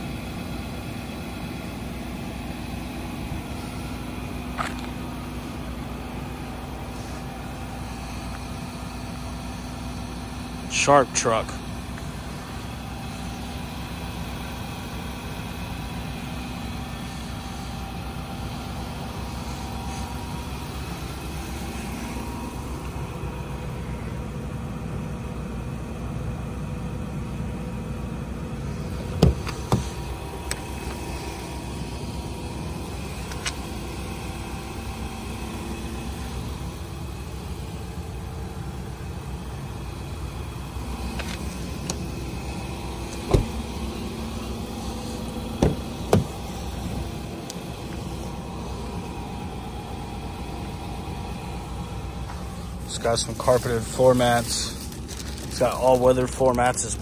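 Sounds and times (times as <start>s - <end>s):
engine idling hum: 0.0s - 57.0s.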